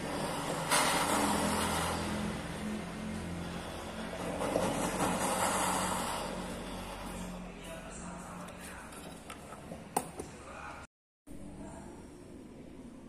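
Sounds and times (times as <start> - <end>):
torch flame hissing: 0.0 - 7.4
low motor hum: 0.0 - 9.9.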